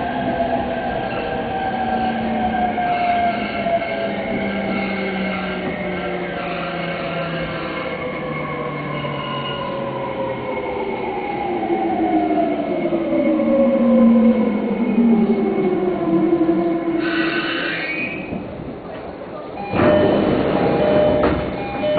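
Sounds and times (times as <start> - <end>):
train traction motors whining: 0.0 - 10.0
train running noise: 0.0 - 12.0, 14.0 - 21.9.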